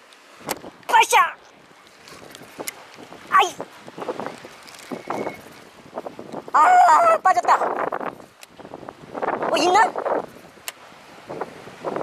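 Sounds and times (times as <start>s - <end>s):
wind buffeting microphone: 0.3s - 12.0s.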